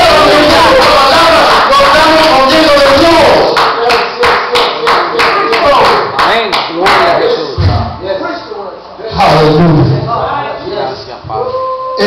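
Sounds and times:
congregation clapping in rhythm: 0.0 - 7.3.

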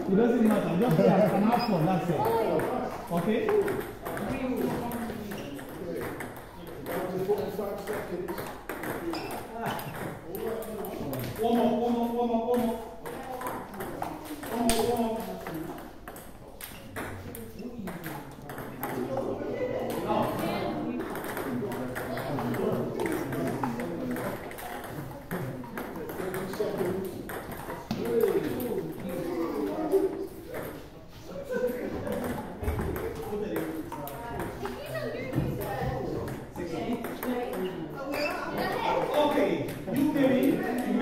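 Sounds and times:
background chatter: 0.0 - 41.0
table tennis balls clicking: 0.4 - 30.8, 32.0 - 41.0.

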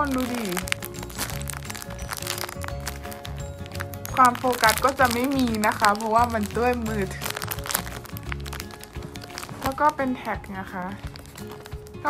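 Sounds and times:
background music with bass: 0.0 - 12.0
plastic bag crinkling: 0.0 - 12.0.

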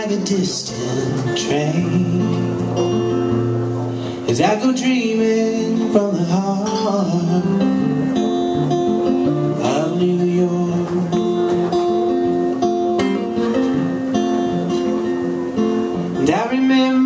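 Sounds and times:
person singing: 0.0 - 3.0, 4.3 - 7.8, 9.5 - 11.6, 16.2 - 17.0
electric guitar strumming chords: 0.0 - 17.0.

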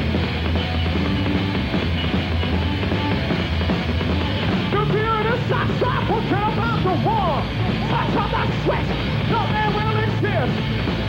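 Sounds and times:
drums: 0.0 - 11.0
heavy metal band playing: 0.0 - 11.0.

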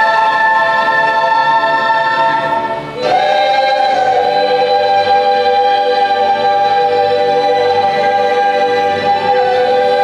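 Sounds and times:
children's choir singing chords: 0.0 - 10.0.

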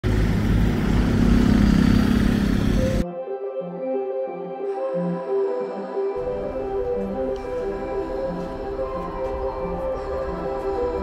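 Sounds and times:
motorcycle engine running: 0.0 - 3.0.

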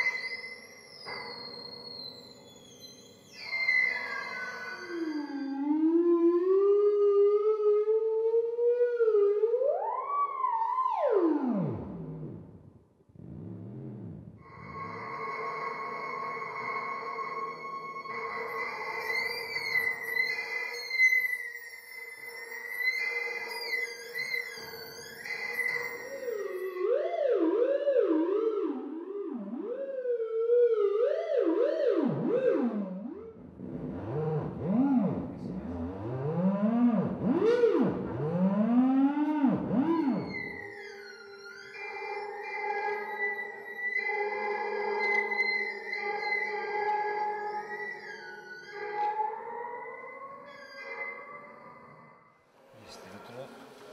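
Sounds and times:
theremin electronic tones: 13.2 - 27.8, 32.0 - 52.1.

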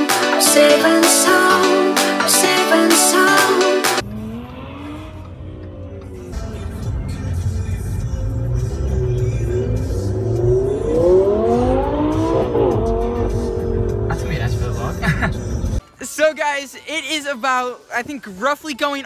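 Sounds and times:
car engine revving: 4.0 - 15.8.

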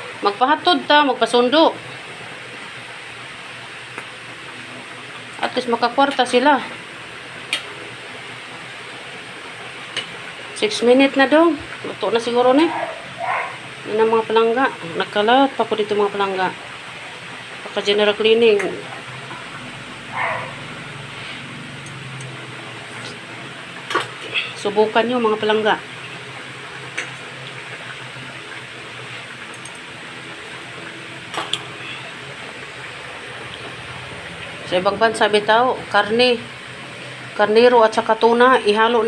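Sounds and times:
soup boiling hiss: 6.6 - 38.7.

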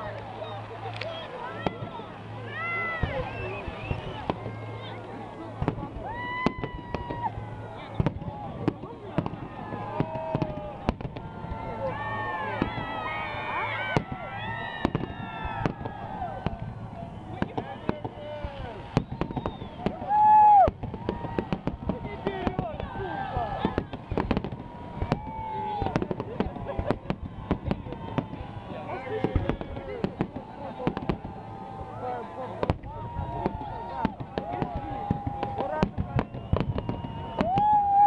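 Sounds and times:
fireworks bangs and crackling: 0.0 - 38.0
firework shells bursting: 13.9 - 23.0, 32.6 - 37.8.

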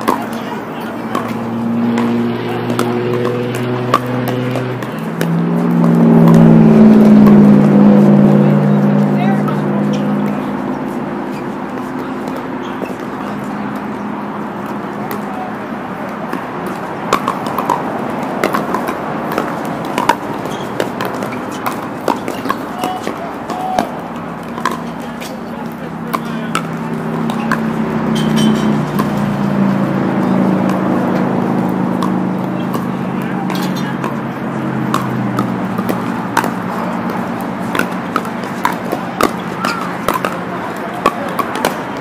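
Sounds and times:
paddles hitting plastic balls: 0.0 - 7.6, 11.4 - 42.0
murmur of voices: 0.0 - 42.0.

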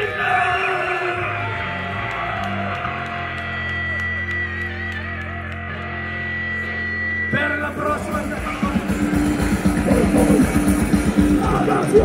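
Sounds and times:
distorted guitar and bass chords: 0.0 - 12.0.

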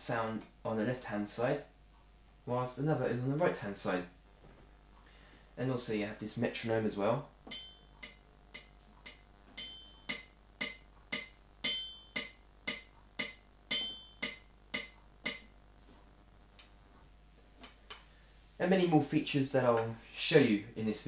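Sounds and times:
metronome clicking: 7.5 - 15.6.

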